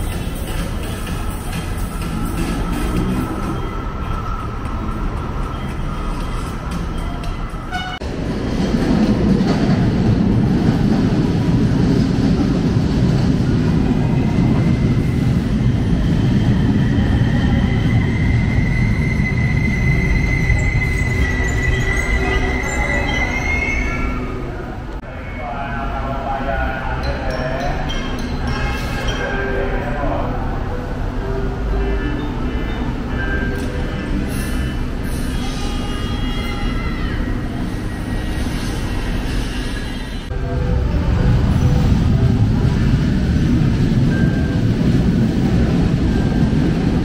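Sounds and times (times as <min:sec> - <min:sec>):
background music: 0:00.0 - 0:08.0, 0:25.2 - 0:34.5
train wheels rumbling on rail: 0:00.0 - 0:25.0, 0:32.9 - 0:47.0
high whine of train: 0:00.0 - 0:47.0.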